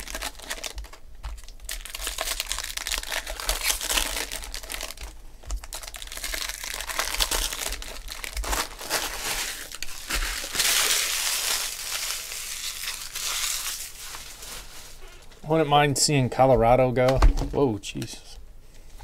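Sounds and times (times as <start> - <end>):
foil wrappers crinkling: 0.0 - 15.4.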